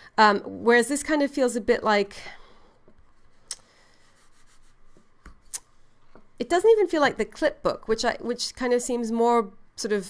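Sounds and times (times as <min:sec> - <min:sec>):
hands rubbing notebook cover: 0:04.0 - 0:05.4.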